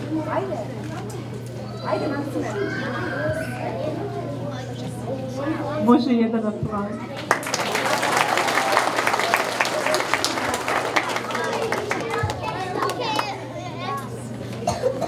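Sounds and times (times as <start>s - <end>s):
children's voices and chatter: 0.0s - 15.0s
audience applauding: 7.1s - 13.4s.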